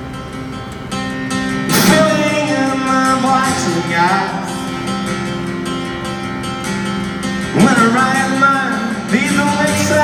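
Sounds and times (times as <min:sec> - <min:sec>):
guitar chords: 0:00.0 - 0:10.0
rock band playing slow song: 0:00.0 - 0:10.0.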